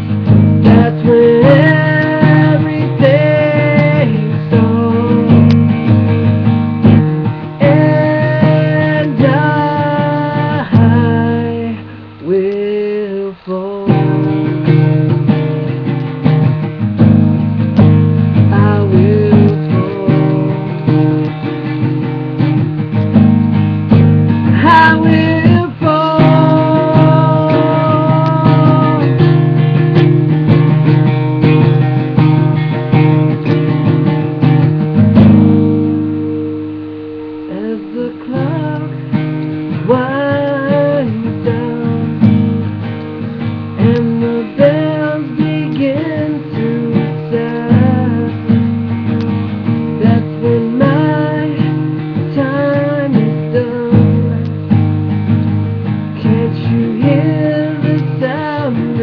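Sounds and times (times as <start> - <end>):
man singing: 0.0 - 6.0, 6.9 - 14.9, 17.7 - 21.3, 24.4 - 30.1, 37.4 - 42.6, 43.7 - 48.7, 49.9 - 54.6, 56.2 - 59.0
strummed acoustic guitar: 0.0 - 59.0.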